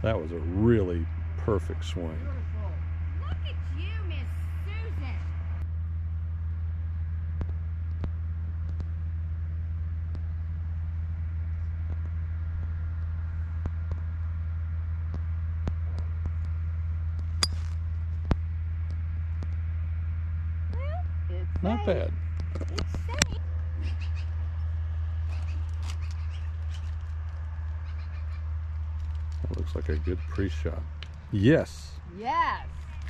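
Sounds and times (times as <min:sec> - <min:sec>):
steady low hum: 0:00.0 - 0:33.0
golf club striking ball: 0:17.4 - 0:17.8.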